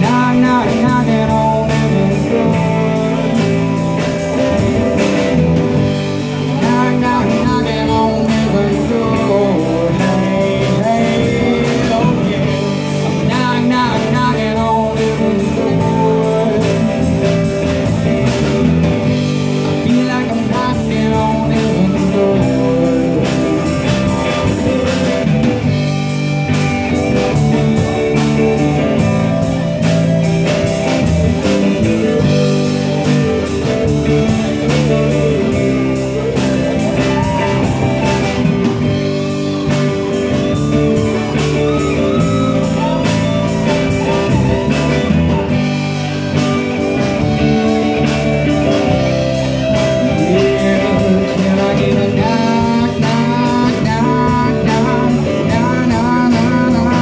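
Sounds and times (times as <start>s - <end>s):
drum kit: 0.0s - 57.0s
electric bass: 0.0s - 57.0s
electric guitar solo: 0.0s - 57.0s.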